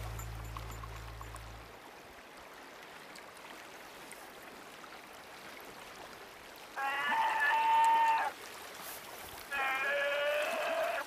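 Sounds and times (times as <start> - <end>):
river rushing: 0.0 - 7.0.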